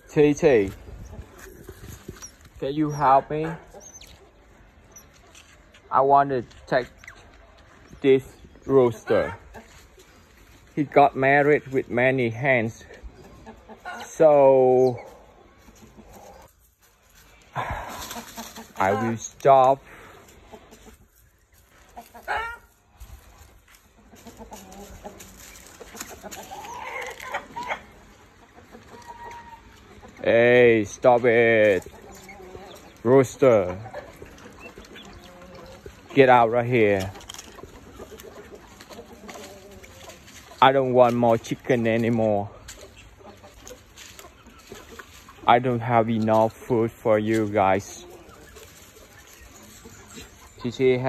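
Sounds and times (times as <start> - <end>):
chickens clucking: 0.0 - 51.0
crunching on dry leaf litter: 16.0 - 28.1, 31.0 - 51.0.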